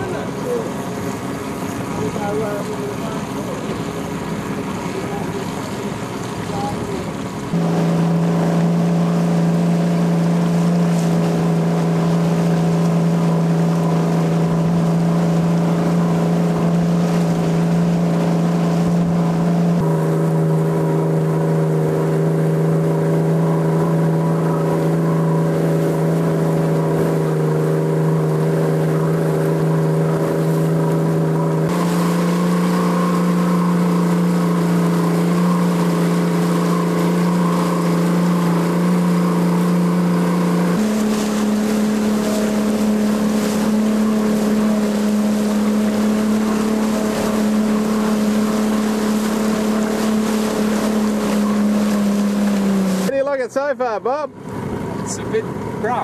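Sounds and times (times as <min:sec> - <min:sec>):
motorboat engine running: 0:00.0 - 0:56.0.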